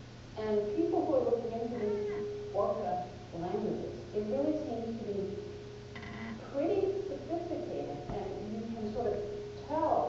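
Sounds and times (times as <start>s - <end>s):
faint steady tone: 0.0s - 10.0s
woman lecturing: 0.4s - 5.4s, 6.4s - 10.0s.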